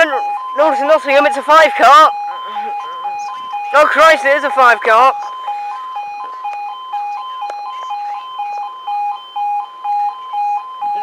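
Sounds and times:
electronic two-tone alarm: 0:00.0 - 0:11.0.

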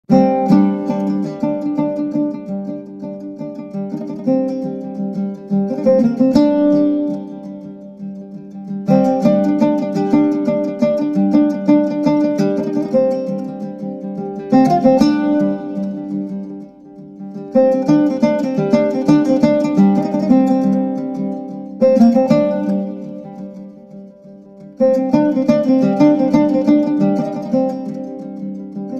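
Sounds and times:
strummed plucked string instrument: 0:00.1 - 0:28.9.

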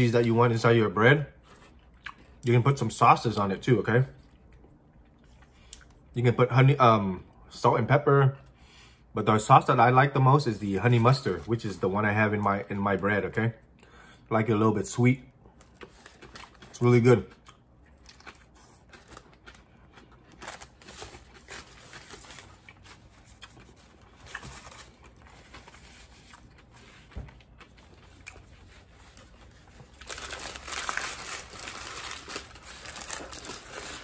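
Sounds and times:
paper crinkling and rustling: 0:18.1 - 0:34.0.

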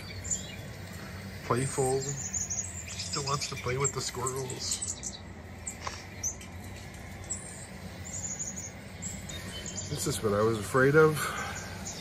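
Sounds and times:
bird chirps from television: 0:00.0 - 0:00.8, 0:01.7 - 0:06.5, 0:07.2 - 0:10.2
low steady hum: 0:00.0 - 0:12.0.

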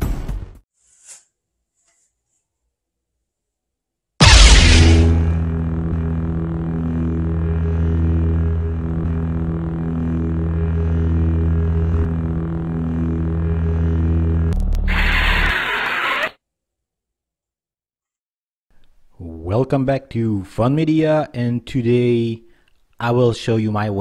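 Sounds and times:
lightsaber bright surge: 0:04.2 - 0:05.5
lightsaber electric hum: 0:04.2 - 0:15.6.

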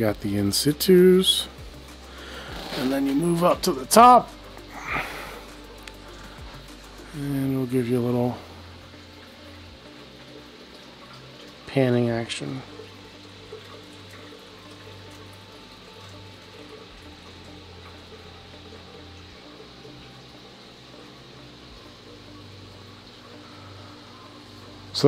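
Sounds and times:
even hiss: 0:00.0 - 0:14.6, 0:15.4 - 0:25.0
low equipment hum: 0:00.0 - 0:25.0.

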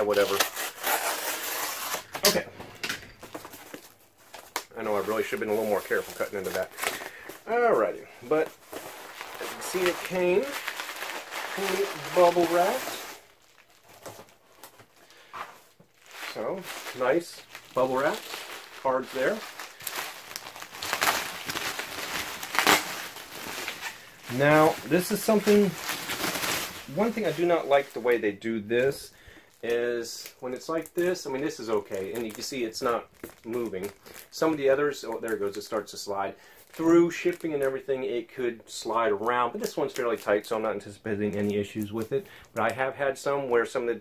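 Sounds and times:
bubble wrap crinkling: 0:00.0 - 0:38.2, 0:38.8 - 0:43.0.

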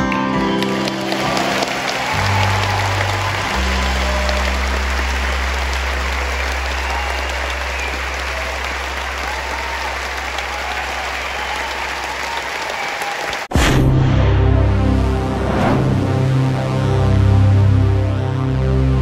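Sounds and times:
audience clapping: 0:00.0 - 0:13.5.

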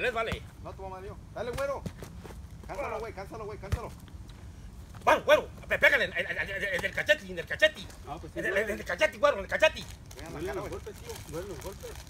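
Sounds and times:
low background hum: 0:00.0 - 0:12.0
men calling out: 0:05.0 - 0:09.6.

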